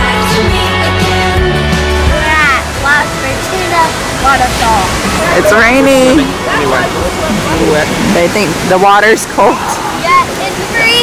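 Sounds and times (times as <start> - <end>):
background music: 0.0 - 9.7
waterfall rushing: 0.0 - 11.0.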